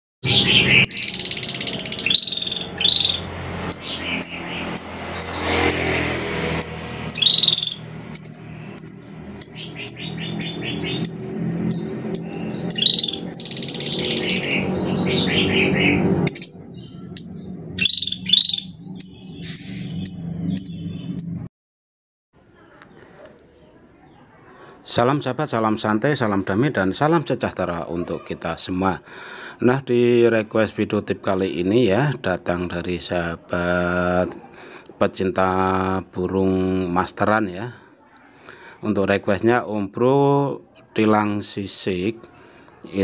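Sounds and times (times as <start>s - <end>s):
bird chirping and whistling: 0.2s - 21.5s.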